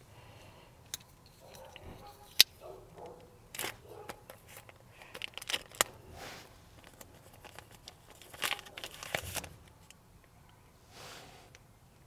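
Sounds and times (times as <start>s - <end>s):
plastic packet rustling: 3.5s - 6.0s, 6.7s - 9.9s.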